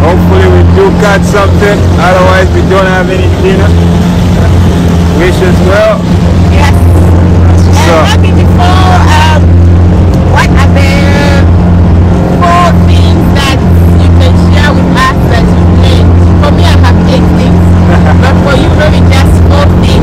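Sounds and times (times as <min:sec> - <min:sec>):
motorboat engine droning: 0:00.0 - 0:20.0
voices: 0:00.0 - 0:20.0.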